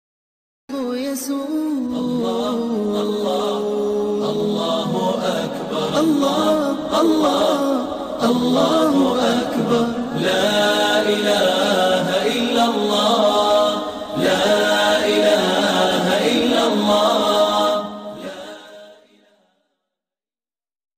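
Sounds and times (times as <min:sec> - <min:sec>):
unaccompanied vocal chant: 0:00.7 - 0:19.4.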